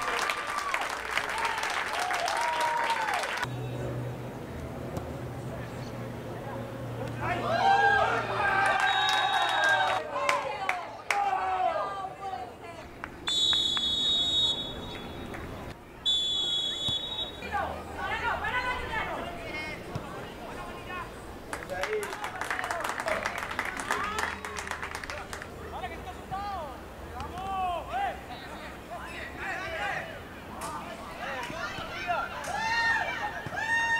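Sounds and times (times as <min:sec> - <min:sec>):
players and spectators shouting: 0:07.2 - 0:12.7, 0:30.9 - 0:33.9
referee's whistle blast: 0:13.3 - 0:15.2, 0:16.0 - 0:17.5.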